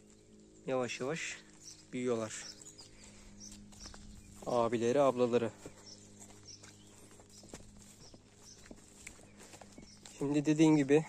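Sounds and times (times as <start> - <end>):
footsteps on grass and soil: 0.0 - 11.0.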